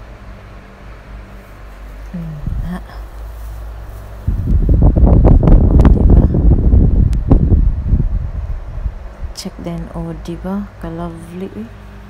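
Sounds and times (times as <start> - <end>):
steady low hum: 0.0 - 12.0
wind buffeting microphone: 2.3 - 3.0, 4.2 - 10.8.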